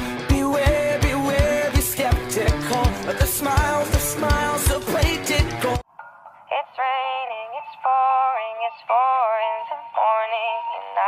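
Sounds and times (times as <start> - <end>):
high synthetic singing voice: 0.0 - 11.0.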